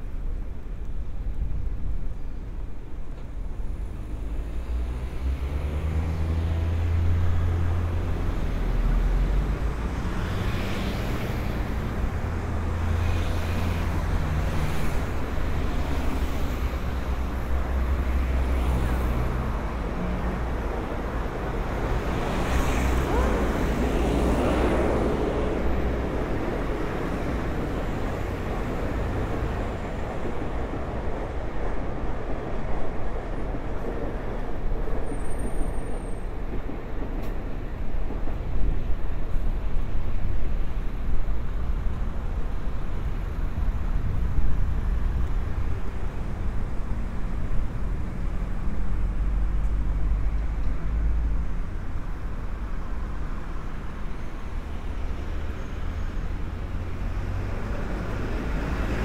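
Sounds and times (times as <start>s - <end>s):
rumble of vehicle engines: 0.0s - 59.0s.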